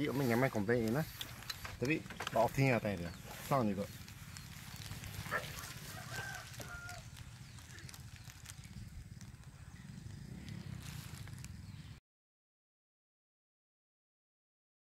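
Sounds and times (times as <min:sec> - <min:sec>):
low wind rumble: 0:00.0 - 0:12.0.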